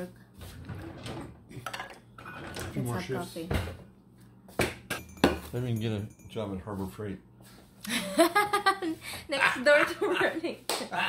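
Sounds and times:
dishes and cutlery clinking: 0:04.6 - 0:06.8.

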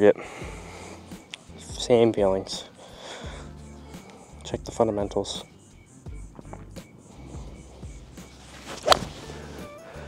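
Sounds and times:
background music: 0:00.0 - 0:10.0
golf club striking ball: 0:06.2 - 0:09.6.

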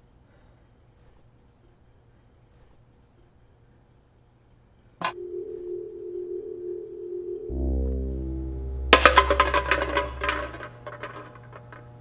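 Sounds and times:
chime-like ringing tone: 0:05.2 - 0:10.2
sharp hit: 0:07.5 - 0:10.6.

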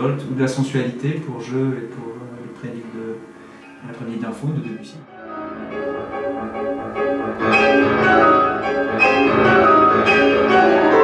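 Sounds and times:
grand pianos playing chords: 0:00.0 - 0:11.0.

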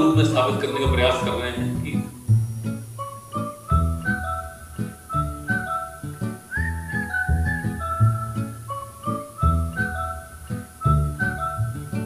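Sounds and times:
rhythmic musical accompaniment: 0:00.0 - 0:12.0
whistle-like melody: 0:00.0 - 0:12.0.

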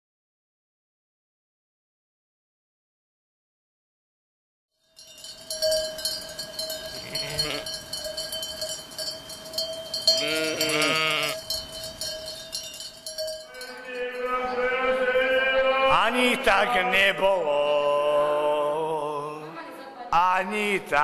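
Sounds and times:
livestock bells clanking: 0:04.8 - 0:15.0
sheep bleating: 0:06.9 - 0:07.8, 0:10.2 - 0:11.4.

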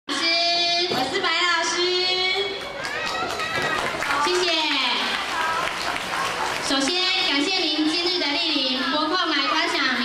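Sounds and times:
children calling out: 0:02.6 - 0:06.7.

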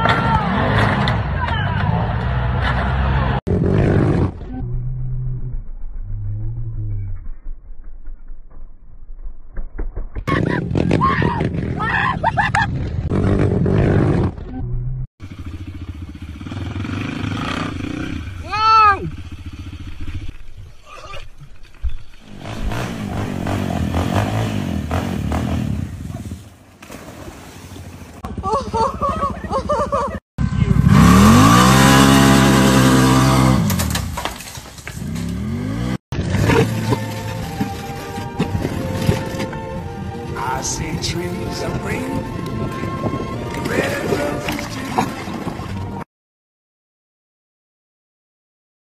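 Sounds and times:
quad bike engines revving: 0:00.0 - 0:05.5, 0:10.4 - 0:21.5, 0:22.2 - 0:26.4, 0:28.1 - 0:40.8, 0:42.6 - 0:46.0
people's voices: 0:43.5 - 0:45.4.

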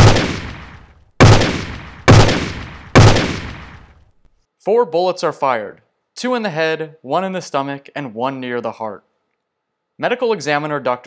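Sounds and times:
loud gunshots: 0:00.0 - 0:04.0.

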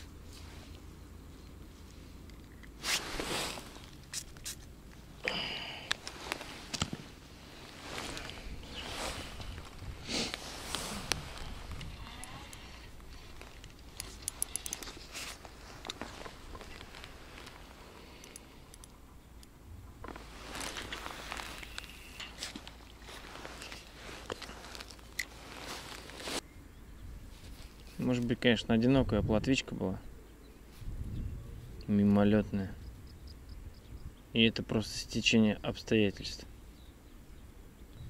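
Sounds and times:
rustling and handling noises: 0:00.0 - 0:19.0, 0:19.9 - 0:26.5.

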